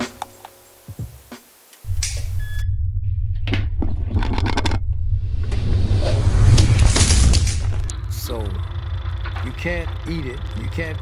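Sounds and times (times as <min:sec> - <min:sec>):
loud low rumble: 0:01.9 - 0:11.0.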